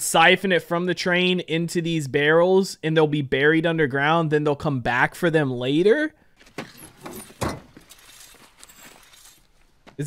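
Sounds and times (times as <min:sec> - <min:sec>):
loud thump: 0:07.4 - 0:07.8.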